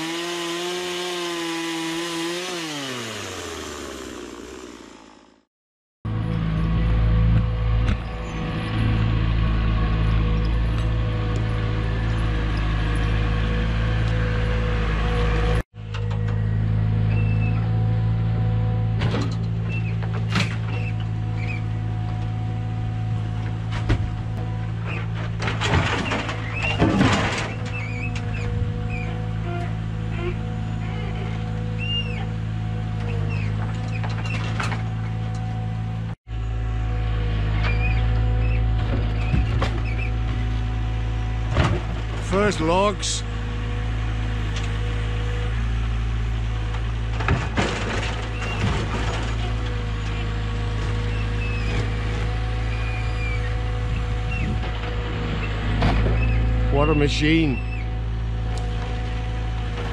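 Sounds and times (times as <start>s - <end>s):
diesel engine droning: 0.0s - 5.5s, 6.1s - 59.9s.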